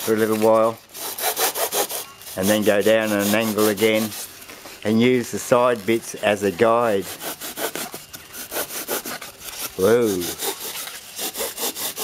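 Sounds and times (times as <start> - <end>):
hacksaw blade sawing foam: 0.0 - 4.3, 6.4 - 12.0.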